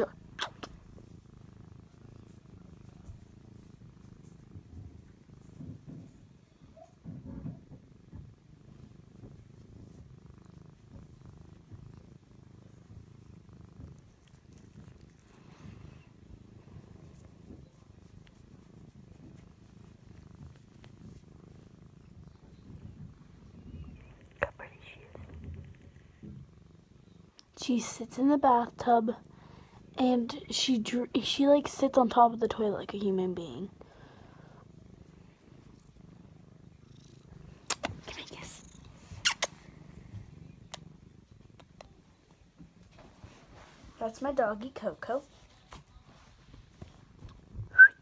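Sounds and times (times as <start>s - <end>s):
cat purring: 0.0s - 48.0s.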